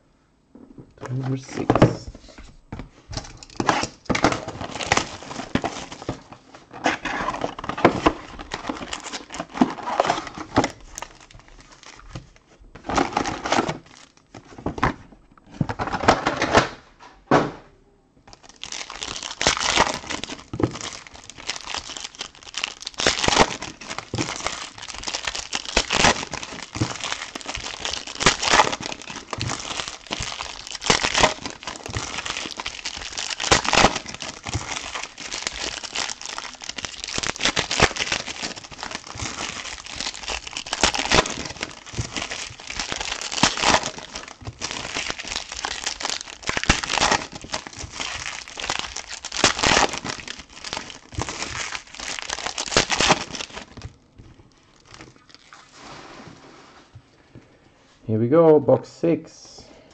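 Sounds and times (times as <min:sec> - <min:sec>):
plastic and foil wrappers crinkling: 0:03.2 - 0:15.0, 0:18.3 - 0:55.9.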